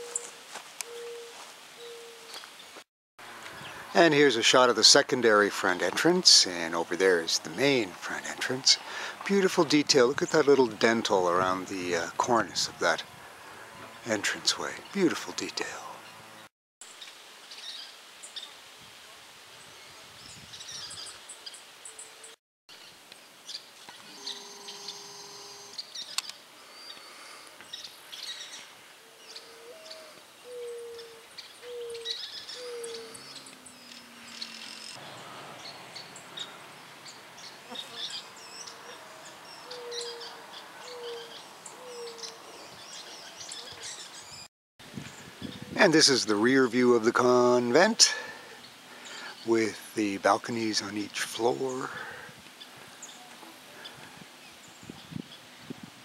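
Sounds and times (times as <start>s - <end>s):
low cooing bird call: 0.0s - 2.5s, 28.2s - 36.6s, 37.6s - 44.4s.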